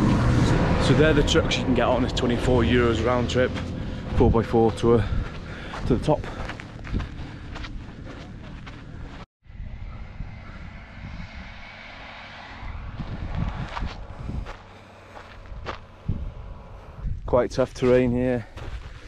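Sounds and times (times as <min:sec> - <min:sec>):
wind buffeting microphone: 0:00.0 - 0:17.8
footsteps crunching on cinder: 0:02.1 - 0:09.3, 0:13.4 - 0:16.3, 0:17.6 - 0:19.0.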